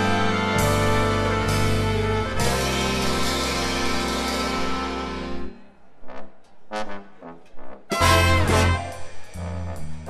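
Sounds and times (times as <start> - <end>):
full band chord: 0.0 - 5.5, 7.9 - 9.4
big band brass notes: 0.0 - 10.0.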